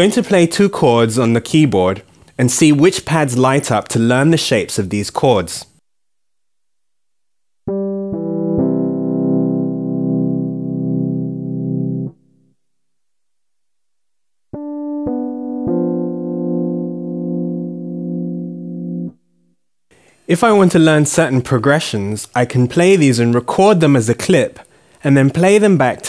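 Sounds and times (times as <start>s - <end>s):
rolled keyboard chords: 7.7s - 12.2s, 14.5s - 19.2s.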